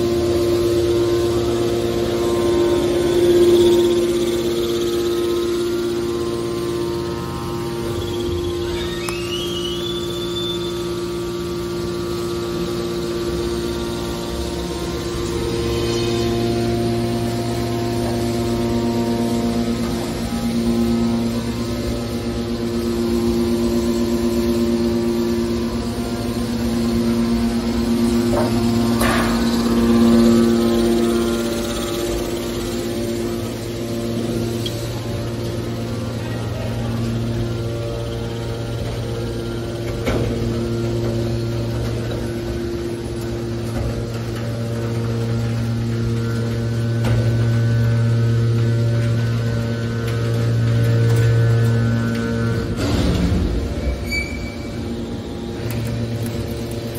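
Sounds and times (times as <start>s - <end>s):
hydraulic pump motor humming: 0.0s - 56.9s.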